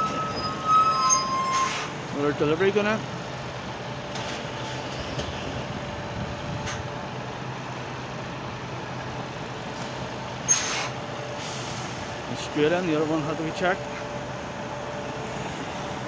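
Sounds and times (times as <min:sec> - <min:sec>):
lorry diesel engine running: 0:00.0 - 0:16.0
sharp air hiss: 0:10.5 - 0:12.1.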